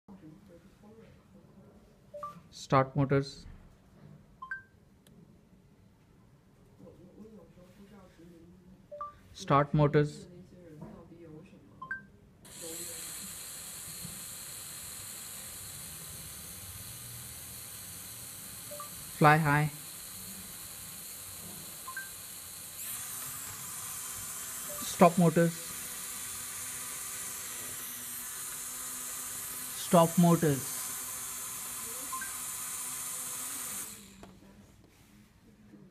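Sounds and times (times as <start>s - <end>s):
short electronic beeps: 2.1s - 2.4s, 4.4s - 4.8s, 8.9s - 9.3s, 18.7s - 19.0s, 21.9s - 22.2s, 32.1s - 32.4s
toy drone motors whirring: 12.5s - 34.4s.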